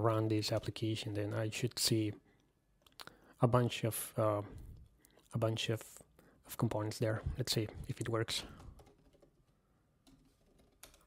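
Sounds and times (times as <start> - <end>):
computer keyboard keystrokes: 10.0 - 11.0.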